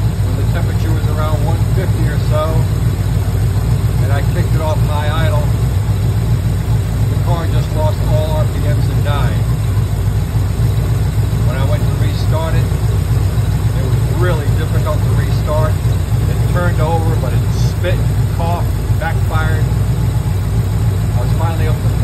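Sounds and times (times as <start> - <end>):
car engine idling: 0.0 - 22.0.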